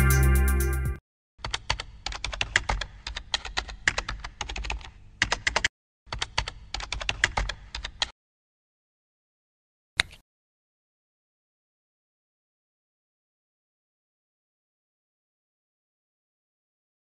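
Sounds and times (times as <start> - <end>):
music: 0.0 - 1.0
typing on a computer keyboard: 1.4 - 8.1.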